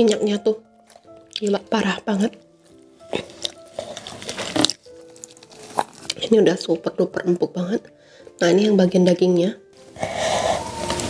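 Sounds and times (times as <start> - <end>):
wet sticky tearing of meat: 0.8 - 1.7, 2.6 - 6.2.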